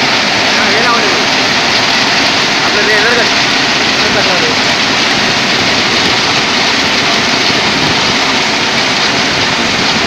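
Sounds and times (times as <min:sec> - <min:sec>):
track maintenance machine running: 0:00.0 - 0:10.0.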